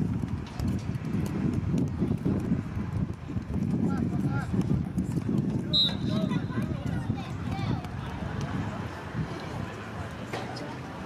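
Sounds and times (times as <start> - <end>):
wind buffeting microphone: 0.0 - 11.0
faint voices: 1.8 - 11.0
short high whistle blast: 5.7 - 6.2.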